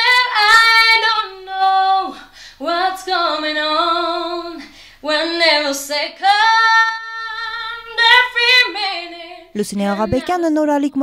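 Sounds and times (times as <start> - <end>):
woman singing unaccompanied: 0.0 - 11.0.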